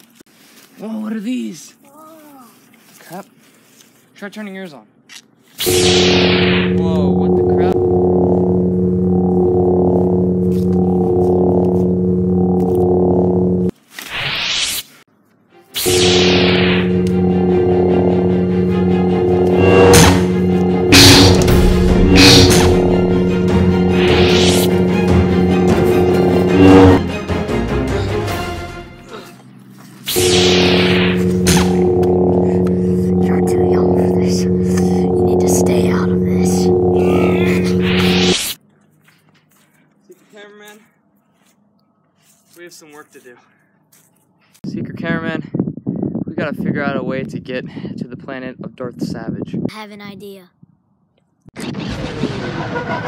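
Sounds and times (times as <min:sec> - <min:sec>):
lightsaber swoosh: 0:05.6 - 0:11.7, 0:15.8 - 0:27.0, 0:30.1 - 0:38.6
lightsaber electric hum: 0:05.6 - 0:13.7, 0:15.8 - 0:27.0, 0:29.9 - 0:38.6.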